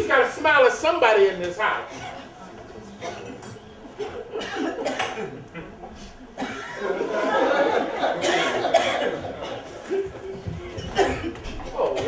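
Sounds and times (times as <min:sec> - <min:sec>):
loud cough: 0:03.0 - 0:07.0, 0:08.0 - 0:10.1, 0:10.8 - 0:12.0
audience laughing: 0:03.8 - 0:10.5.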